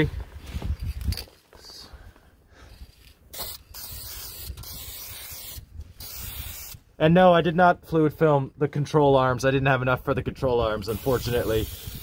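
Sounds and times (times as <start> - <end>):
aerosol can spraying: 3.3 - 6.8, 10.9 - 12.0.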